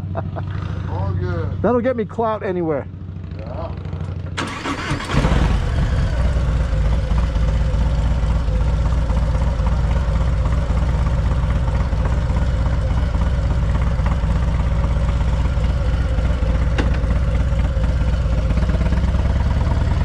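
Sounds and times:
motorcycle engine idling: 0:00.0 - 0:20.0
motorcycle engine cranking: 0:04.2 - 0:05.7.

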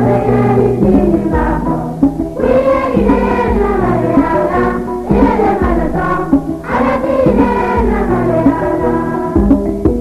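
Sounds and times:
pitched instruments: 0:00.0 - 0:10.0
voices singing: 0:00.0 - 0:10.0.

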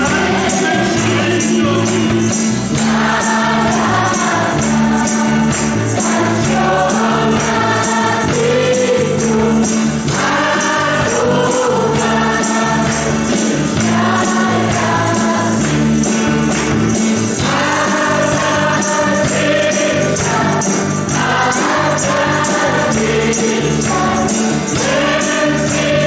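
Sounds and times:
bass guitar: 0:00.0 - 0:26.0
electric guitar: 0:00.0 - 0:26.0
shaken tambourine: 0:00.0 - 0:26.0
voices singing together: 0:00.0 - 0:26.0.

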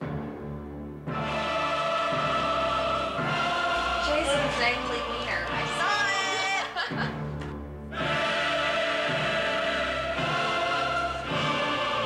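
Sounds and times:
choir singing theme music: 0:00.0 - 0:12.0.

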